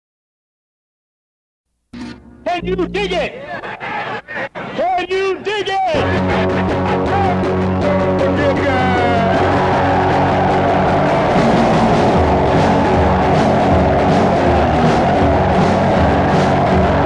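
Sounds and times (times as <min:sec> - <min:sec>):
lo-fi punk rock song: 0:06.0 - 0:17.0.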